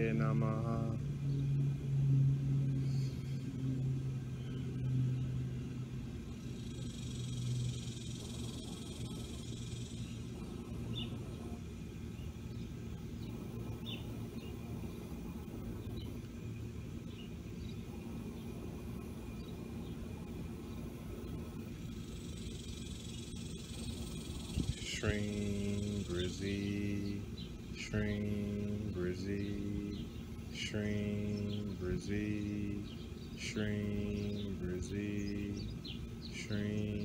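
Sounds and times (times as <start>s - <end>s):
low steady hum: 0.0s - 37.0s
outdoor background rumble: 0.0s - 37.0s.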